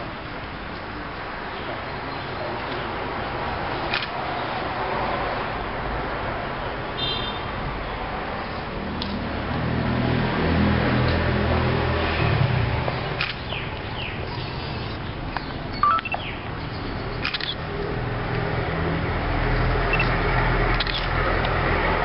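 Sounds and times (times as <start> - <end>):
sharp clicks: 13.2 - 13.9, 15.4 - 16.3, 17.2 - 17.6, 19.9 - 21.6
short falling chirps: 15.8 - 16.3.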